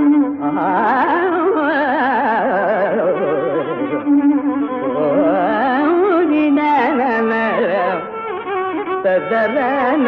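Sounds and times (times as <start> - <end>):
solo violin melody with oscillating notes: 0.0 - 10.0.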